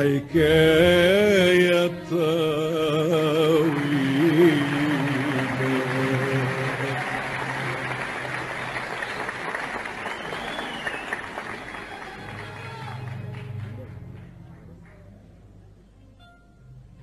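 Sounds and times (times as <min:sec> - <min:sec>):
person singing: 0:00.0 - 0:07.6
audience applauding: 0:03.2 - 0:15.1.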